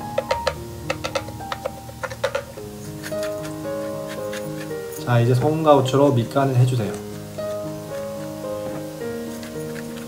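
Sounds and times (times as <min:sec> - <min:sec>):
wooden spatula stirring in frying pan: 0:00.0 - 0:05.5, 0:06.8 - 0:10.0
background music with sustained notes: 0:00.0 - 0:10.0.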